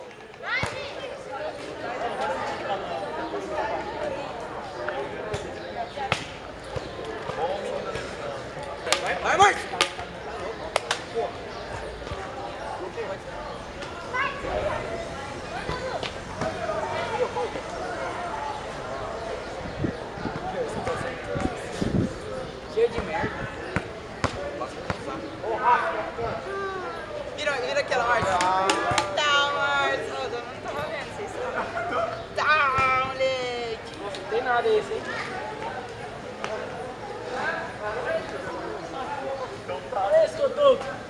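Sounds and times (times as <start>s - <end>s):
loud overlapping voices: 0.0s - 41.0s
teenagers chattering: 0.0s - 41.0s.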